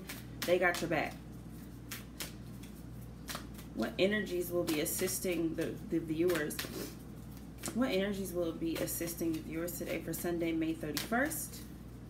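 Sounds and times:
cards being shuffled: 0:00.0 - 0:03.8.

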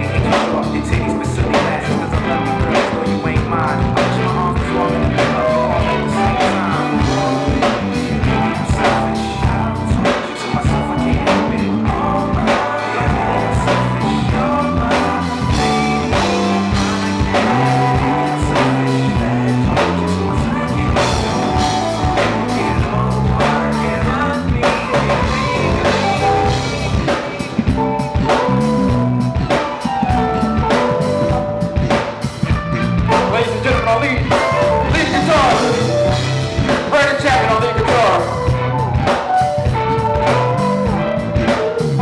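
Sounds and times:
drum kit steady beat: 0:00.0 - 0:42.0
keyboard chords: 0:00.0 - 0:42.0.

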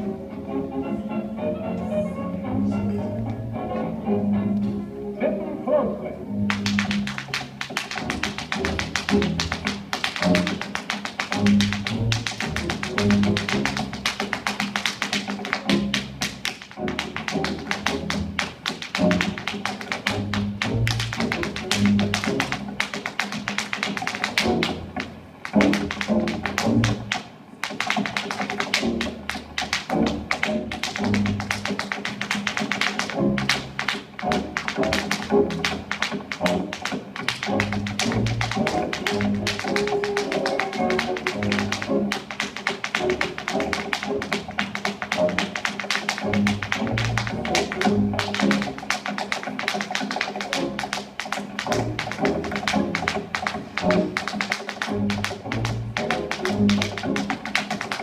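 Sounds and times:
recorded music: 0:00.0 - 0:58.0
tap shoes on wooden board: 0:06.4 - 0:58.0.

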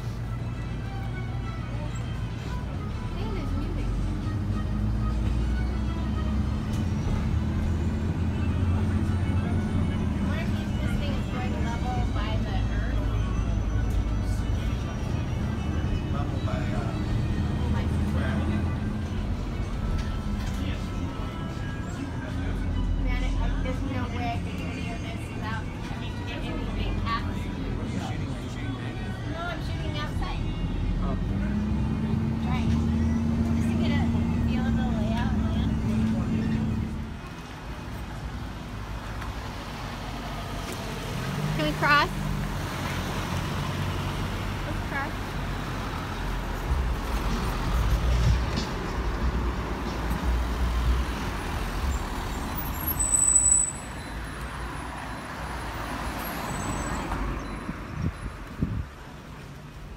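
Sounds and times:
bus engine running: 0:00.0 - 0:59.9
street traffic noise: 0:00.0 - 0:59.9
short squeal: 0:52.4 - 0:54.3.

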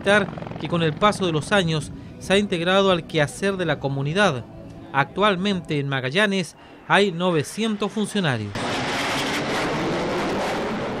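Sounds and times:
jet aircraft flying overhead: 0:00.0 - 0:05.7, 0:06.5 - 0:11.0.

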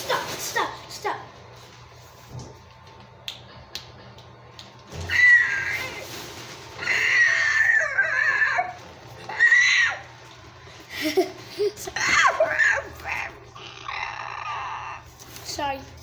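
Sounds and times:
child making dinosaur cries: 0:12.0 - 0:15.1.

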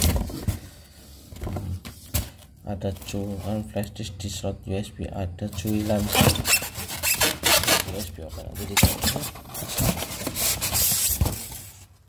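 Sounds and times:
styrofoam rubbed and scraped: 0:05.6 - 0:11.8.

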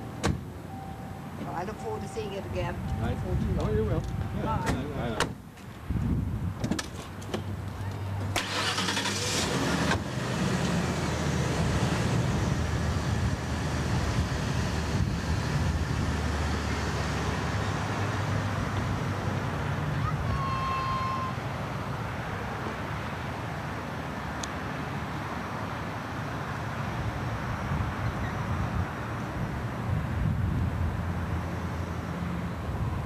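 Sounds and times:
voices: 0:01.4 - 0:05.3, 0:19.9 - 0:21.4.

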